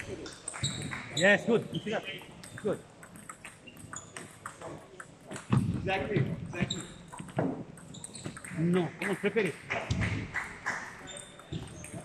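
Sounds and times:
ball bouncing on table: 2.4s - 12.0s
ball clicking off rackets: 2.4s - 12.0s.

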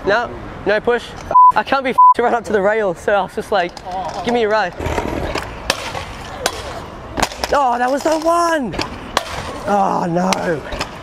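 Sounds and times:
scooter wheels rumbling on bricks: 3.7s - 6.4s.

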